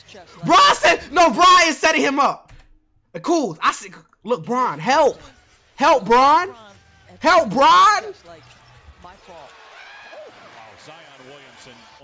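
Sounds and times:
commentator talking: 0.0 - 2.5, 3.2 - 8.5
arena noise: 0.4 - 2.4, 3.3 - 12.0.

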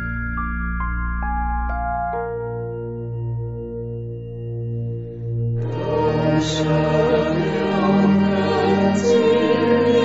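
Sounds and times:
low drone: 2.5 - 10.0
chanted singing with instruments: 5.5 - 10.0.

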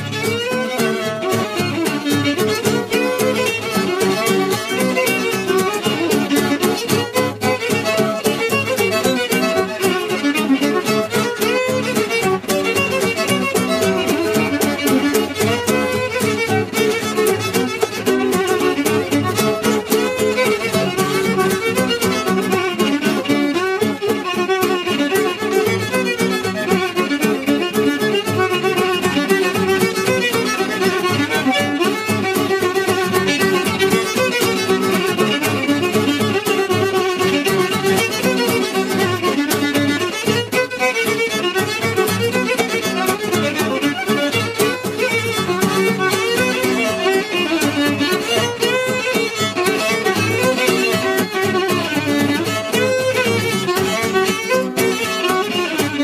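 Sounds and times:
fiddle playing fast melody: 0.0 - 56.0
strummed acoustic guitar: 0.0 - 56.0.

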